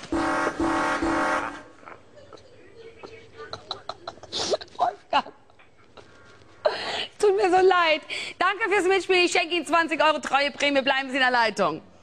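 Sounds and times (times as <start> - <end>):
low buzzer blasts: 0.0 - 1.8.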